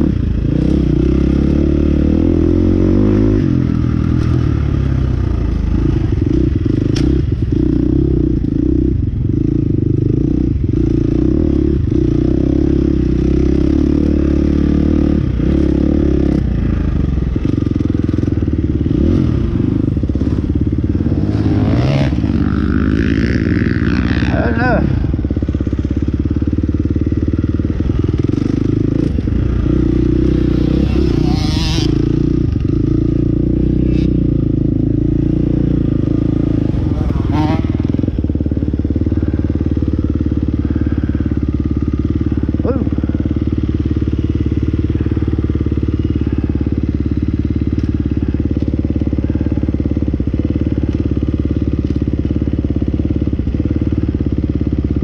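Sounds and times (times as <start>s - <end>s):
dirt bike engine: 0.0s - 55.0s.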